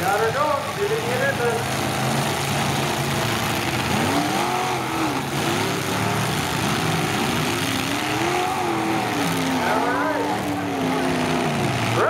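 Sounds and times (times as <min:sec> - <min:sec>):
car engines revving: 0:00.0 - 0:12.0.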